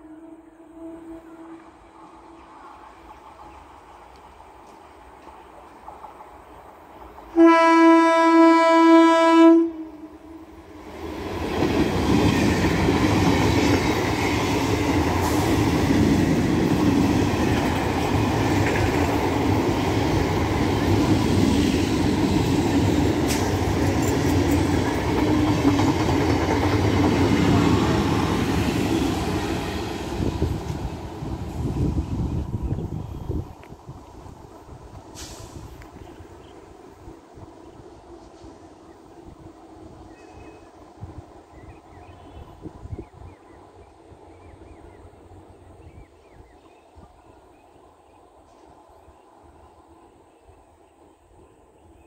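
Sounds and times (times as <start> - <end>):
train horn blast: 0.0 - 2.5, 7.3 - 10.5
train wheels rumbling over rails: 1.6 - 9.3, 10.6 - 51.5.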